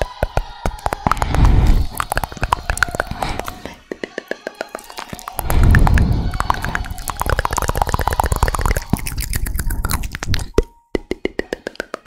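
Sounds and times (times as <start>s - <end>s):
wet mouth clicks and pops: 0.0s - 12.0s.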